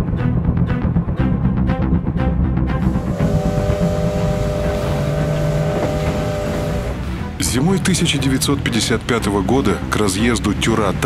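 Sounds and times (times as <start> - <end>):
low rumble: 2.8 - 7.4
train whistle blowing: 2.8 - 7.4.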